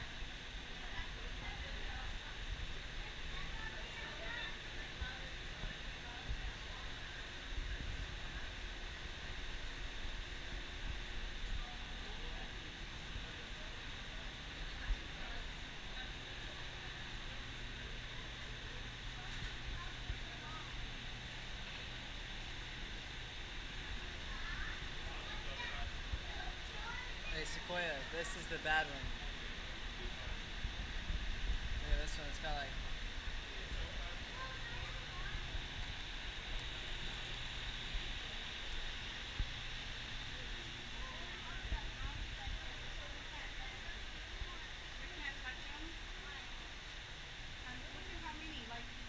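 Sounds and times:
faint scattered voices: 0:00.0 - 0:49.0.

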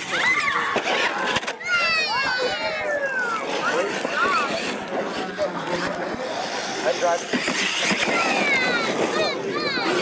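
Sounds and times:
spectators chattering: 0:00.0 - 0:10.0
toy truck driving on gravel: 0:00.0 - 0:10.0.

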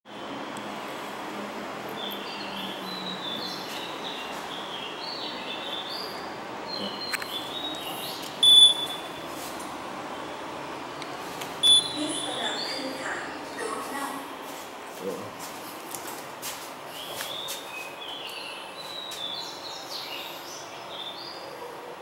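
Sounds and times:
steady background noise: 0:00.1 - 0:22.0
high-pitched elevator button beeps: 0:08.4 - 0:09.2, 0:11.6 - 0:12.6.

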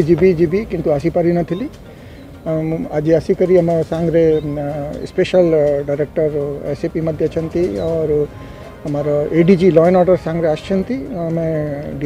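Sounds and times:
man talking: 0:00.0 - 0:01.8, 0:02.4 - 0:12.0.

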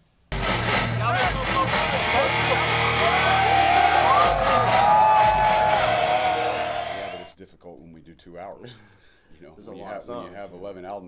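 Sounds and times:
heavy metal band playing live: 0:00.4 - 0:07.2.

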